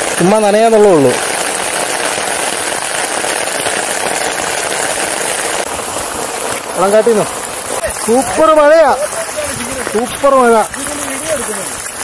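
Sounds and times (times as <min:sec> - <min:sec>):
heavy rain rushing: 0:00.0 - 0:12.0.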